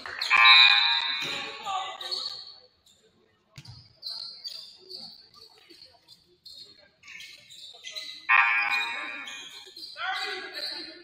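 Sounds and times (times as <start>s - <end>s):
voices calling out echoing: 0.0s - 2.4s, 7.0s - 11.0s.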